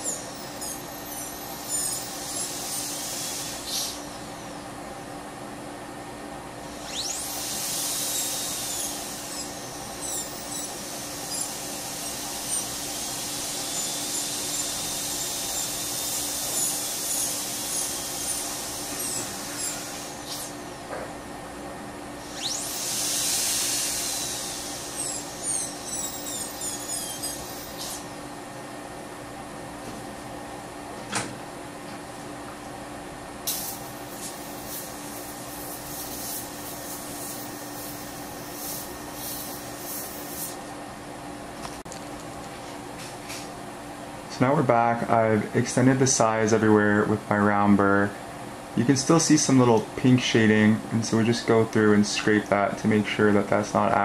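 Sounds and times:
dental drill whine: 0:00.0 - 0:04.6, 0:06.6 - 0:21.2, 0:22.2 - 0:28.2, 0:33.5 - 0:40.6
steady low hum: 0:00.0 - 0:54.0.

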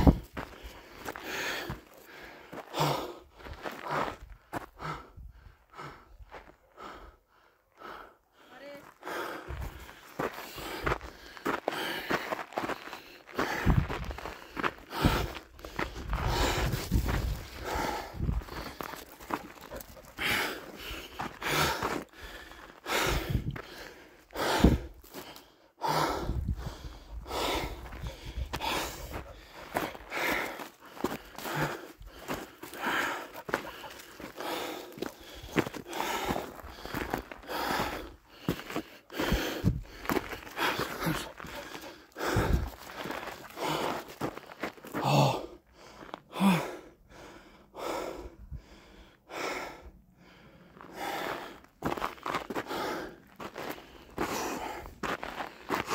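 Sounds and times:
footsteps on gravelly dirt: 0:00.0 - 0:05.0, 0:08.6 - 0:25.5, 0:26.5 - 0:45.4, 0:50.8 - 0:55.9.

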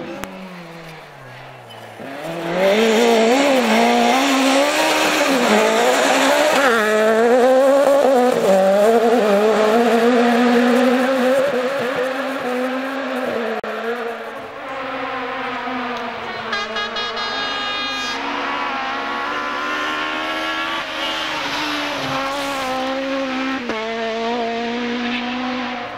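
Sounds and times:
rally car engine revving: 0:00.0 - 0:25.9.

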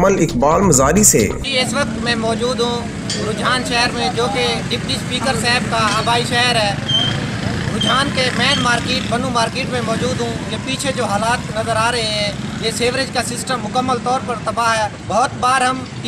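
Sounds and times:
man talking into microphone: 0:00.0 - 0:02.8.

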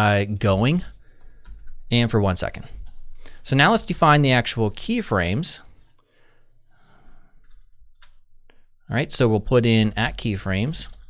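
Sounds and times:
soft breath out: 0:06.0 - 0:07.6.

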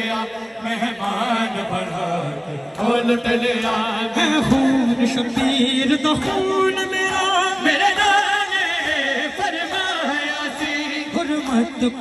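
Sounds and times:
men chanting lament over loudspeaker: 0:00.0 - 0:12.0.

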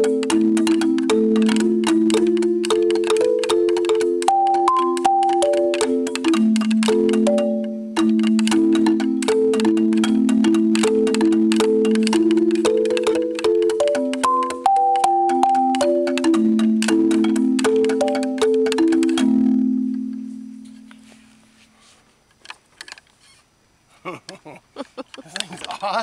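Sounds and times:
marimba played with mallets: 0:00.0 - 0:21.2.

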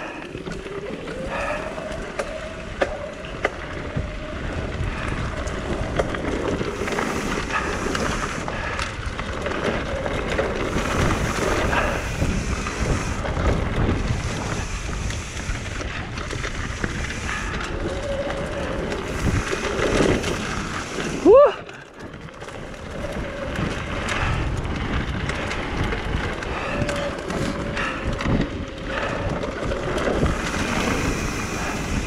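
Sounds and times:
bike clicks and rattles: 0:00.0 - 0:32.0
tyres rumbling on dirt and leaves: 0:00.0 - 0:32.0
wind rushing over microphone: 0:00.0 - 0:32.0.

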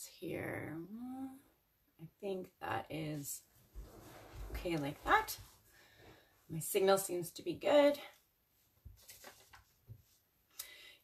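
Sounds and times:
faint breath: 0:05.7 - 0:06.5, 0:10.6 - 0:11.0.

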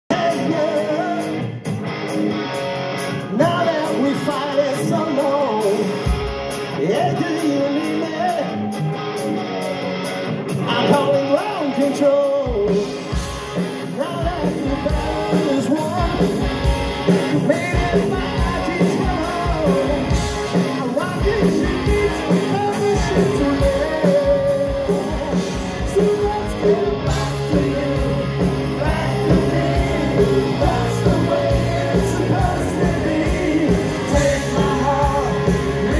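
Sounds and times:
man singing lead vocal: 0:00.1 - 0:01.6, 0:03.2 - 0:08.8, 0:10.5 - 0:35.9
hard rock band playing live: 0:00.1 - 0:35.9.

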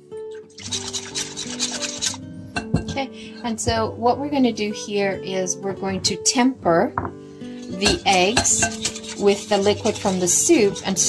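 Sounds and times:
background music: 0:00.0 - 0:11.0
whisk scraping glass bowl: 0:00.3 - 0:02.3, 0:07.4 - 0:11.0
knock: 0:07.0 - 0:07.2.

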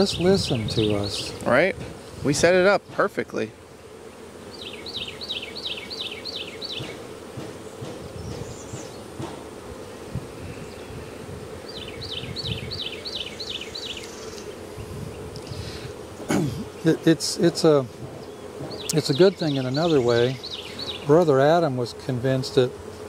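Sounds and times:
honeybees humming: 0:00.0 - 0:23.0
bird singing falling notes: 0:04.2 - 0:07.0, 0:07.6 - 0:09.2, 0:11.6 - 0:14.6, 0:18.2 - 0:21.3.

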